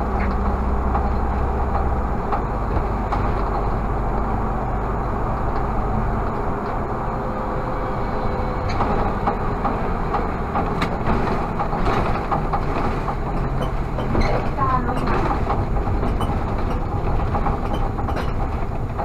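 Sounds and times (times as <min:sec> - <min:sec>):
bus engine and road noise: 0:00.0 - 0:19.0
rattles and clicks from bus body: 0:00.0 - 0:19.0.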